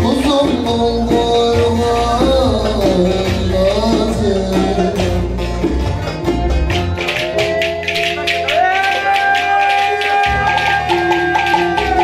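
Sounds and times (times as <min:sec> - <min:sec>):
folk dance music: 0:00.0 - 0:12.0.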